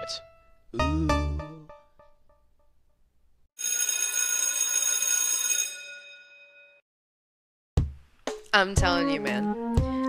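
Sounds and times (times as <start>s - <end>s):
loud bell ringing: 3.6s - 6.8s.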